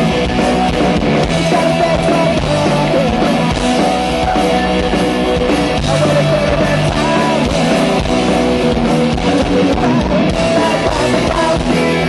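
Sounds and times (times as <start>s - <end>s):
bass guitar: 0.0s - 12.0s
drum kit: 0.0s - 12.0s
electric guitar: 0.0s - 12.0s.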